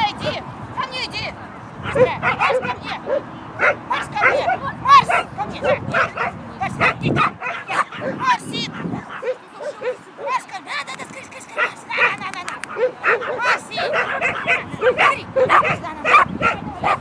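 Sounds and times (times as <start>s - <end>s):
dog barking in high yips: 1.8s - 10.4s, 11.6s - 17.0s.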